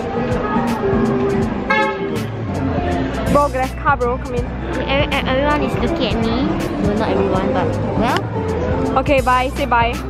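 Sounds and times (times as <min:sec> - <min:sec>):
street traffic noise: 0:00.0 - 0:10.0
car horn toot: 0:01.7 - 0:02.2.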